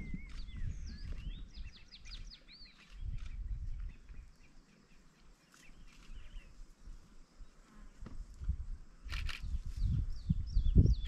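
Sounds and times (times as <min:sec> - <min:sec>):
faint insect buzzing: 0:04.4 - 0:10.2.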